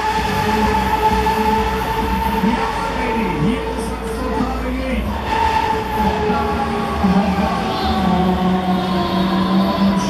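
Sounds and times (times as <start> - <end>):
fairground ride rumbling: 0.0 - 10.0
music from sound system: 0.0 - 10.0.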